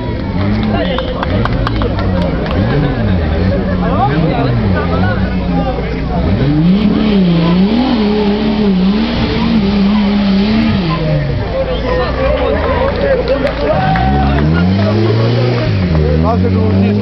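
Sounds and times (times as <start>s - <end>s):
off-road vehicle engine revving: 0.0s - 17.0s.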